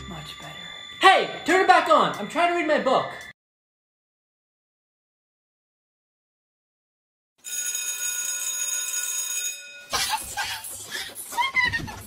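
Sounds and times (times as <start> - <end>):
electric school bell ringing: 0.0 - 3.3, 7.4 - 10.7.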